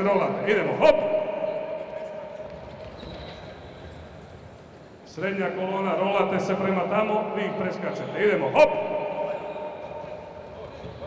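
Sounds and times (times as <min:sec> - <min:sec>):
shouted command echoing: 0:00.0 - 0:02.4, 0:05.2 - 0:10.4.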